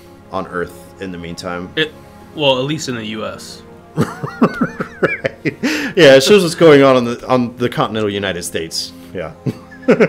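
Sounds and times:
man laughing: 0:04.0 - 0:06.0, 0:09.4 - 0:10.0.

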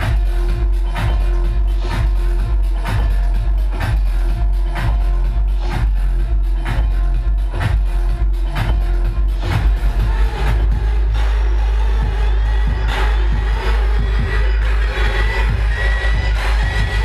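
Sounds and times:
electronic dance music: 0:00.0 - 0:17.0.

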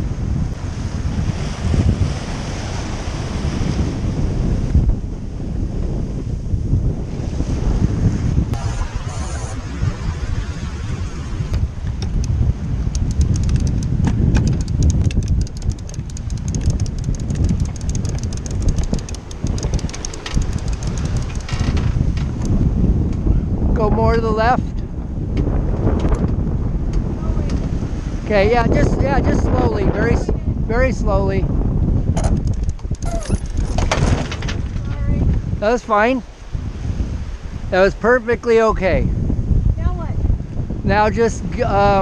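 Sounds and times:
wind buffeting microphone: 0:00.0 - 0:42.0
water splashing along hull: 0:11.5 - 0:22.9
fast faint clicking: 0:12.0 - 0:22.6, 0:32.2 - 0:33.7.

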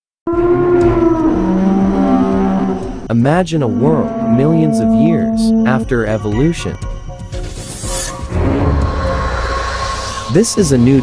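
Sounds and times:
dinosaur bellow: 0:00.3 - 0:06.0.

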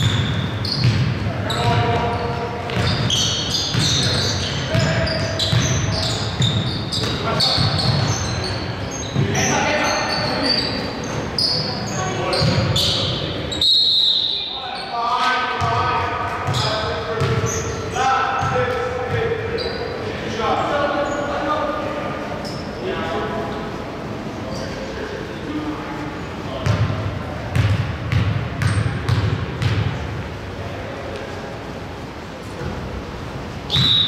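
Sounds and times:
sneakers squeaking: 0:00.0 - 0:20.1, 0:20.8 - 0:21.6, 0:22.4 - 0:22.9, 0:24.4 - 0:24.9, 0:26.5 - 0:30.4, 0:33.6 - 0:34.0
basketball bouncing on wooden floor: 0:00.8 - 0:02.0, 0:16.4 - 0:17.5, 0:27.5 - 0:29.9.

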